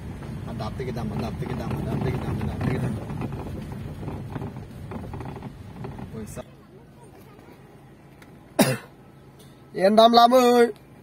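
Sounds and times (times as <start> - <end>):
person coughing: 8.6 - 9.0.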